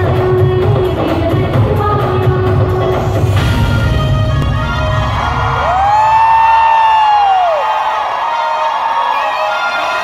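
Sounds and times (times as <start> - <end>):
loud stage music: 0.0 - 10.0
crowd cheering: 4.4 - 10.0
long high whoop: 4.6 - 8.3.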